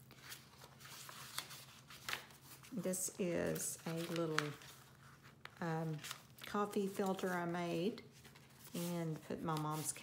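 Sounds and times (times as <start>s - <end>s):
paper pages turning: 0.0s - 10.0s.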